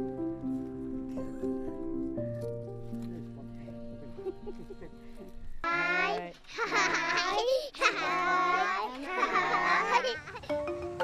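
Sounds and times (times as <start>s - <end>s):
children shouting and laughing: 5.6s - 11.0s.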